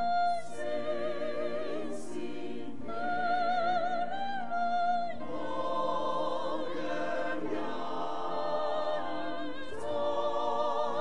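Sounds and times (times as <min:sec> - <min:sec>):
choir singing a hymn: 0:00.0 - 0:11.0.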